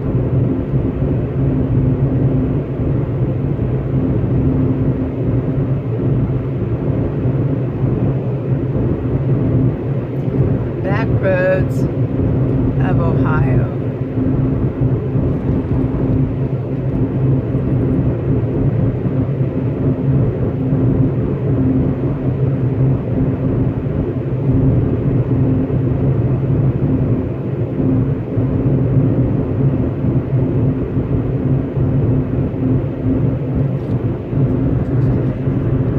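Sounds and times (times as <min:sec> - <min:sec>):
engine droning: 0:00.0 - 0:35.9.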